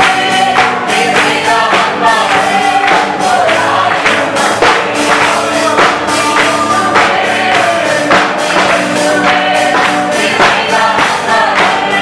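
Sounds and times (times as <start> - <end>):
congregation singing: 0.0 - 12.0
electric guitar: 0.0 - 12.0
hand clapping: 0.0 - 12.0
voices singing on microphone: 0.0 - 12.0.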